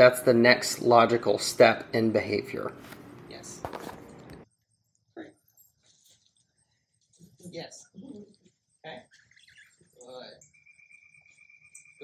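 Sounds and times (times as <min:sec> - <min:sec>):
bird chirps: 0:08.3 - 0:12.0.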